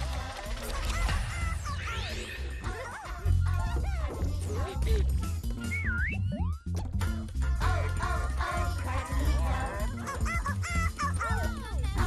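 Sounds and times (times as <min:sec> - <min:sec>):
bright children's music: 0:00.0 - 0:12.0
squeaky cartoon character calls: 0:09.9 - 0:12.0.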